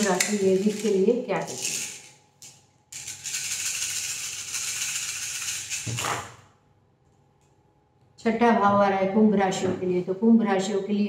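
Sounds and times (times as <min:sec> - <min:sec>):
small pieces rattled in hands: 0:00.0 - 0:06.0.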